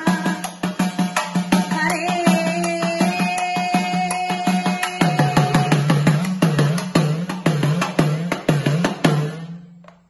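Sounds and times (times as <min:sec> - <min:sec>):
folk drum beaten in rhythm: 0:00.0 - 0:10.0.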